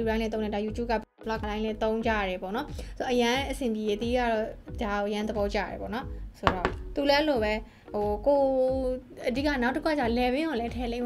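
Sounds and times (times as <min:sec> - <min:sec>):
background music with voice and beat: 0:00.0 - 0:11.0
glass jar set down on hard surface: 0:06.4 - 0:06.8.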